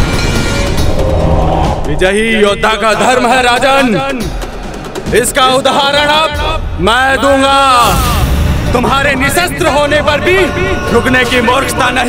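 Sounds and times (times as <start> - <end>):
rushing rumbling sound effect: 0.0 - 2.8, 7.8 - 12.0
dramatic background score: 0.0 - 12.0.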